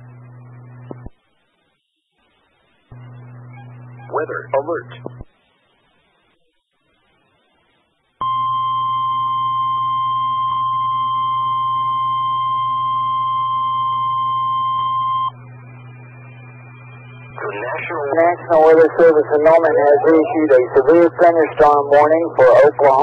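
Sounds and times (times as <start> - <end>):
low hum: 0.0 - 6.2, 8.2 - 23.0
person speaking on radio: 4.1 - 5.0, 17.4 - 23.0
steady alarm tone: 8.2 - 23.0.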